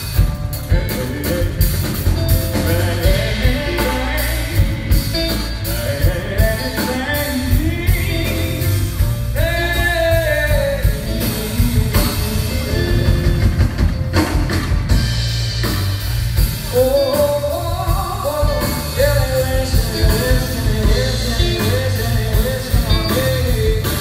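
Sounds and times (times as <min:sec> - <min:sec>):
person singing: 0:00.0 - 0:13.6, 0:16.6 - 0:24.0
drum kit beat: 0:00.0 - 0:24.0
electric guitars: 0:00.0 - 0:24.0.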